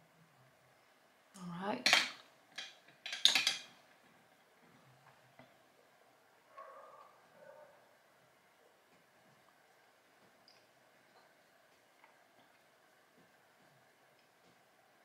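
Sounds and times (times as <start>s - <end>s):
containers clattering and clinking: 1.8s - 3.8s.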